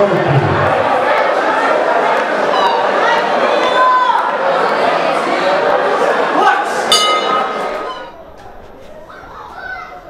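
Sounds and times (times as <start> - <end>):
crowd chatter: 0.0 - 10.0
boxing ring bell ringing: 6.9 - 8.1.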